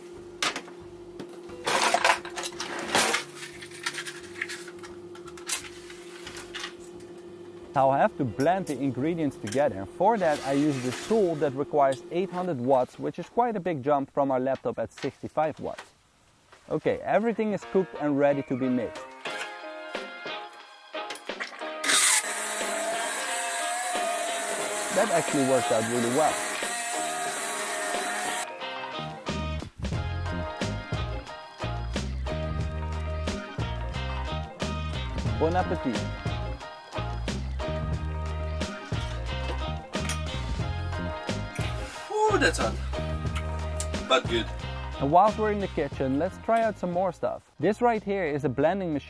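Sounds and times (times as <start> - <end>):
steady hum: 0.0 - 13.7
stick blender whining: 21.8 - 28.5.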